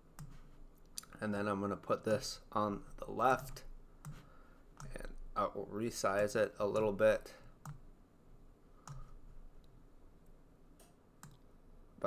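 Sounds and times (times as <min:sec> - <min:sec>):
computer mouse clicks: 0:03.4 - 0:04.2, 0:07.6 - 0:07.8, 0:08.8 - 0:09.8, 0:10.8 - 0:11.5.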